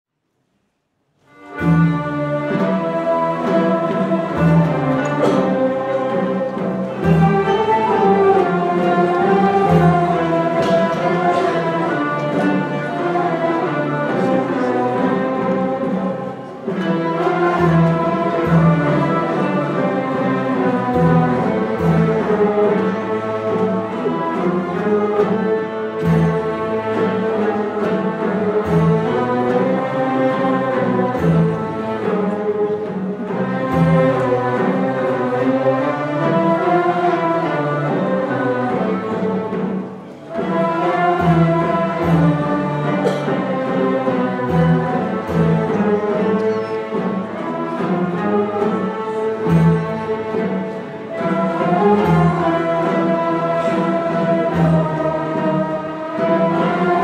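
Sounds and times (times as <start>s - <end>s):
bowed strings and plucked lutes: 1.2s - 57.0s.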